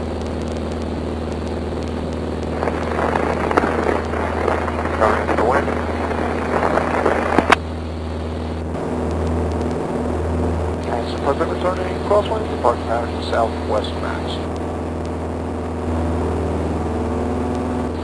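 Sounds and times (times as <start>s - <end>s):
aircraft engine and propeller droning: 0.0s - 18.0s
indistinct voices: 2.5s - 7.6s, 10.8s - 14.5s.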